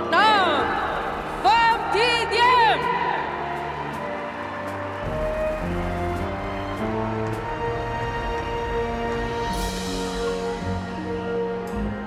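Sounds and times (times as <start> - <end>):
ceremonial background music: 0.0 - 12.0.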